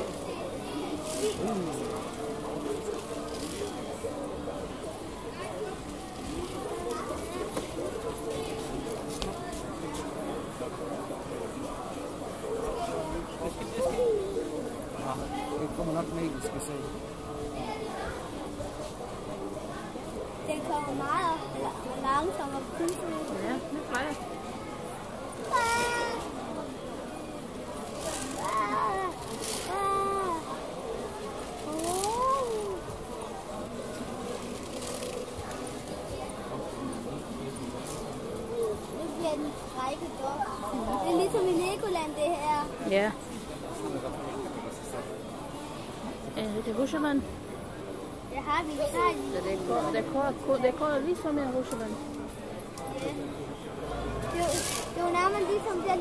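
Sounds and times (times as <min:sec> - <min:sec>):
indistinct chatter of voices: 0:00.0 - 0:56.0.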